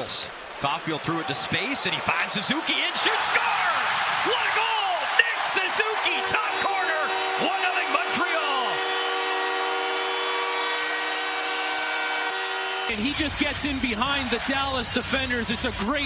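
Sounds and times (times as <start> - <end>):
crowd cheering: 0.0 - 16.0
crowd shouts: 0.5 - 16.0
goal horn blast: 4.4 - 14.5.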